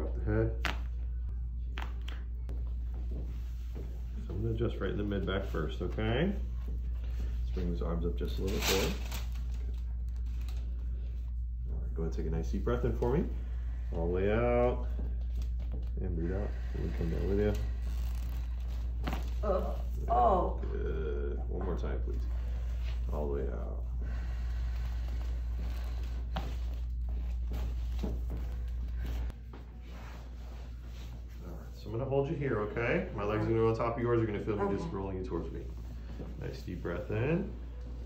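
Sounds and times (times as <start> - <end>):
low room hum: 0.0 - 38.0.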